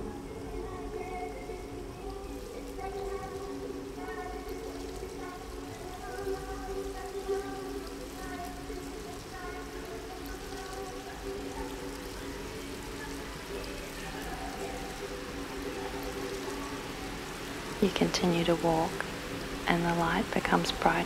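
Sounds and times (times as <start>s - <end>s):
ambient music of held tones: 0.0s - 21.0s
running water hiss: 0.0s - 21.0s.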